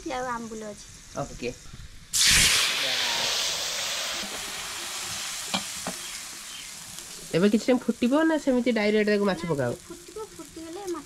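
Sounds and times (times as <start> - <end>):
egg sizzling in hot oil: 0.0 - 11.0.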